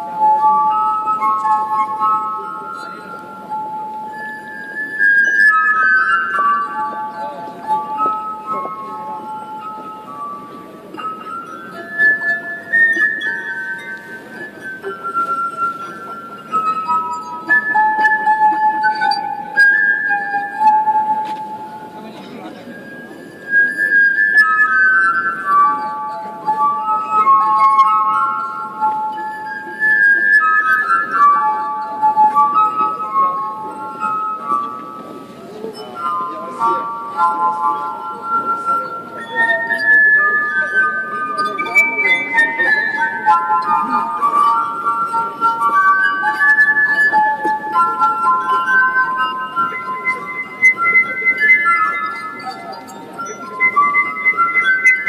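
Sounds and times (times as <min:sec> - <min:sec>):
crowd talking quietly: 0:00.0 - 0:55.0
glass harp melody: 0:00.0 - 0:55.0.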